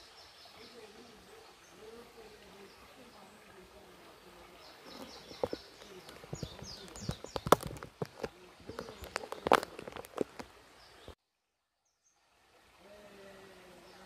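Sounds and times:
sharp clicks and knocks: 0:05.3 - 0:10.5.

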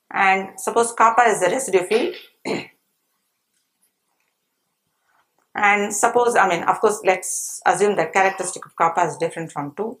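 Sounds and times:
woman speaking: 0:00.1 - 0:02.8, 0:05.5 - 0:10.0
woman coughing: 0:01.9 - 0:02.8.

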